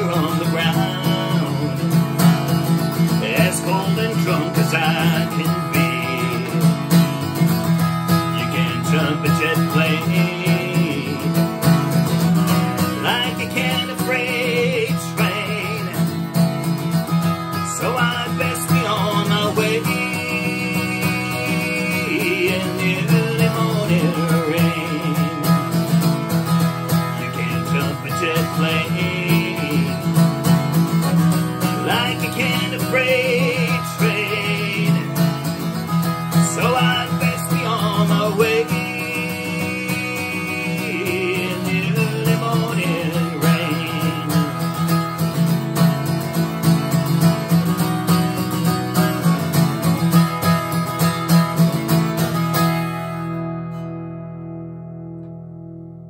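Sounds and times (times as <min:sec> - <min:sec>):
acoustic guitar strummed and picked: 0:00.0 - 0:56.0.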